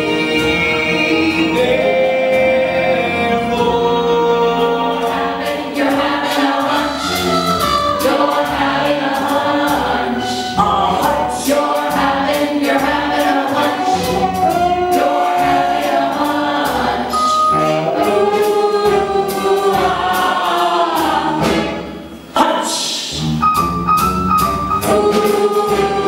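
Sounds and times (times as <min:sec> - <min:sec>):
ensemble singing in chorus: 0:00.0 - 0:22.4, 0:24.7 - 0:26.0
live band accompaniment: 0:00.0 - 0:26.0
drum hits: 0:23.4 - 0:25.9.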